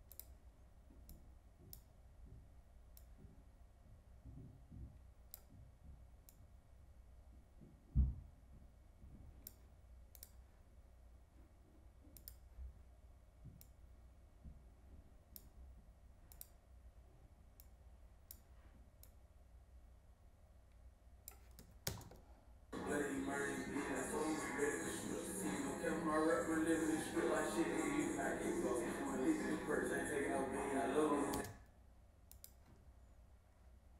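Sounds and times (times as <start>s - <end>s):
computer mouse clicks: 0.0s - 0.4s, 9.4s - 10.4s, 12.1s - 12.6s, 16.3s - 16.6s, 17.6s - 19.2s, 21.2s - 22.2s, 32.3s - 32.8s
low room hum: 0.0s - 33.9s.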